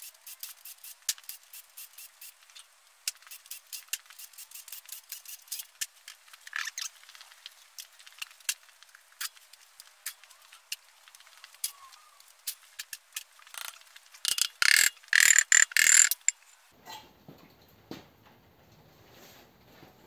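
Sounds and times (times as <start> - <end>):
metallic clicks and knocks from tools: 13.5 - 16.3
rattling metal-on-metal bursts: 13.5 - 16.3.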